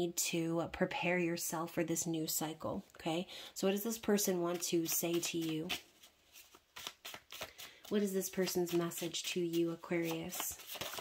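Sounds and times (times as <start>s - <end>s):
cards being shuffled: 4.2s - 11.0s.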